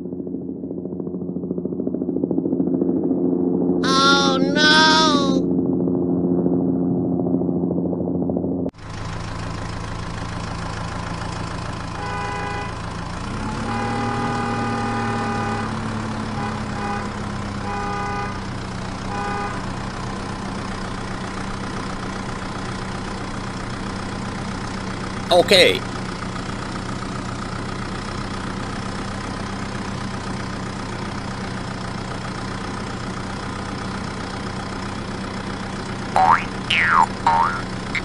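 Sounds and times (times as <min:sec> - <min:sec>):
toy vehicle engine sound: 0:03.8 - 0:05.4, 0:36.2 - 0:38.0.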